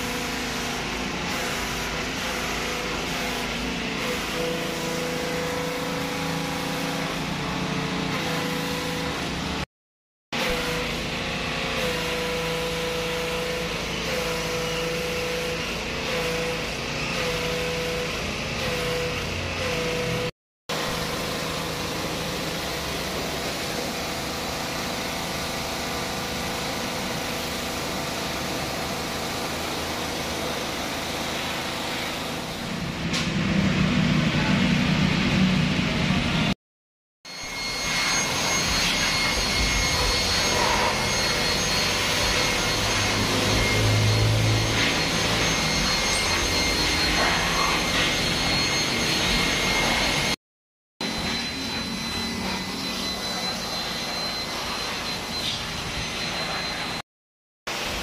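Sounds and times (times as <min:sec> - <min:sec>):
pressure washer motor hum: 0:00.0 - 0:09.6, 0:10.4 - 0:36.5, 0:37.3 - 0:50.4.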